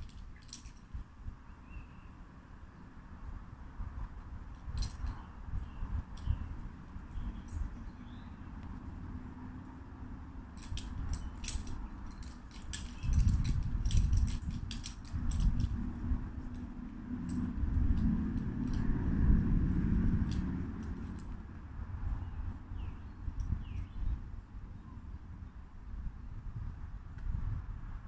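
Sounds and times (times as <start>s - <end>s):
wind on microphone: 3.3s - 8.8s, 10.6s - 28.0s
small hard objects clinking: 10.6s - 15.8s.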